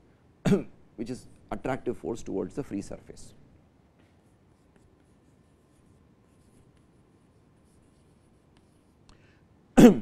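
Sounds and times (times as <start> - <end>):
chalk writing on chalkboard: 4.1 - 9.1.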